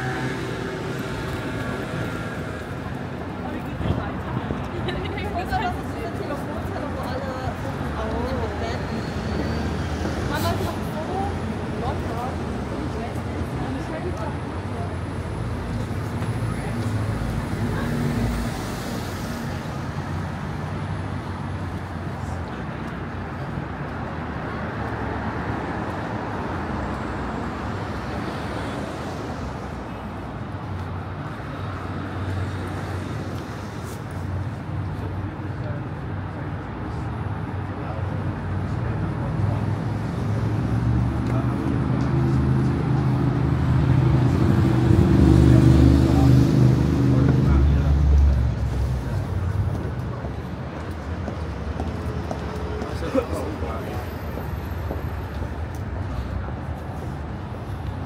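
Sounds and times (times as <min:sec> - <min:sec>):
heavy vehicle engine: 0:00.0 - 0:22.6, 0:36.3 - 0:58.0
road traffic: 0:00.0 - 0:58.0.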